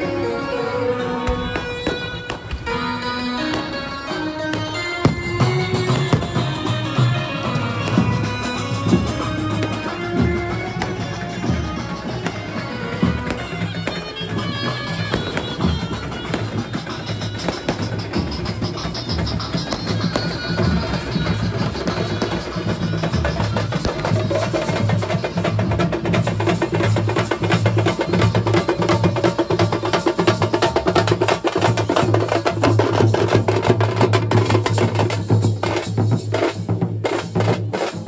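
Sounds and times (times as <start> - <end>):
wind instrument melody: 0.0 - 38.0
drums beaten fast: 1.3 - 38.0.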